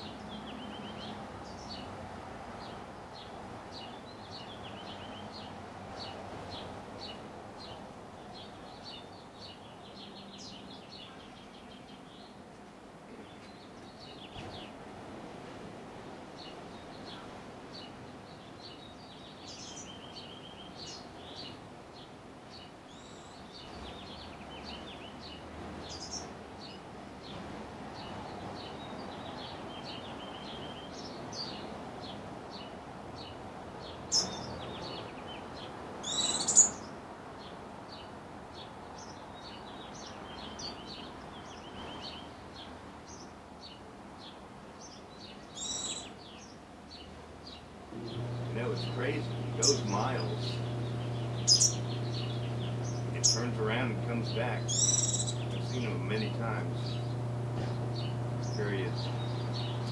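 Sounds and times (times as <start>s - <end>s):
small birds chirping: 0.0s - 14.8s, 16.4s - 59.9s
low ambient hum: 47.9s - 59.9s.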